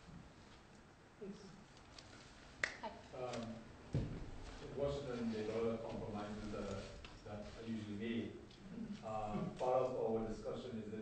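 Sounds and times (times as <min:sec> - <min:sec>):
person speaking: 0:04.6 - 0:11.0.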